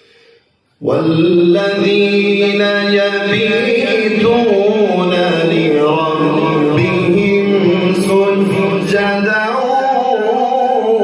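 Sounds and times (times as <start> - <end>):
man reciting melodically: 0.8 - 11.0.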